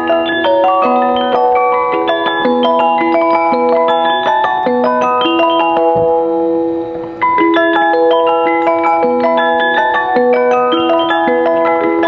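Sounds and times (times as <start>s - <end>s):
music box playing: 0.0s - 12.0s.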